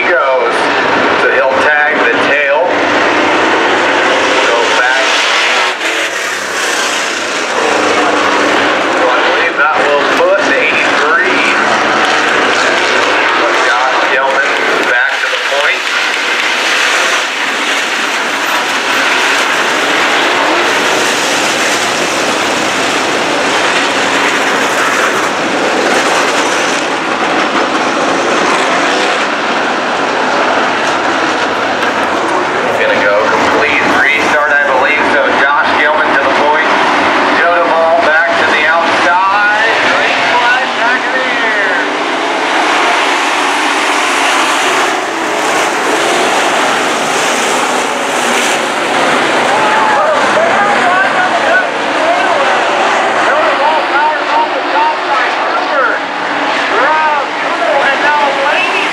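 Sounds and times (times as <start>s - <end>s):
race car engines running hard: 0.0s - 58.9s.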